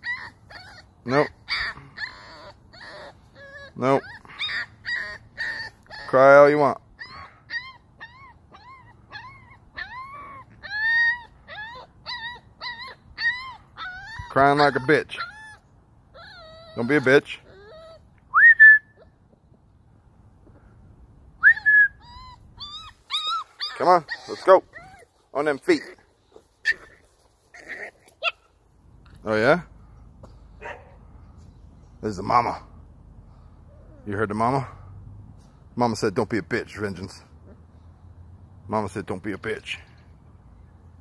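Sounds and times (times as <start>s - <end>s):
puppy whining: 0.0s - 19.2s, 21.4s - 28.5s.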